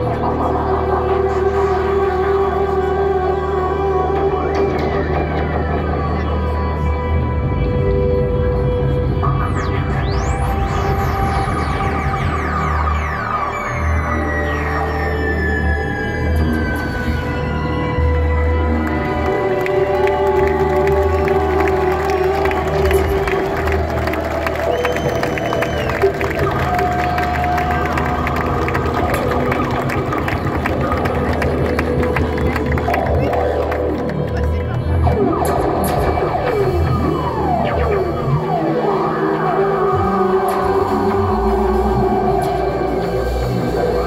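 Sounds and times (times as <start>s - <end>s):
deep bass drone: 0.0s - 44.0s
crowd cheering: 18.7s - 34.5s.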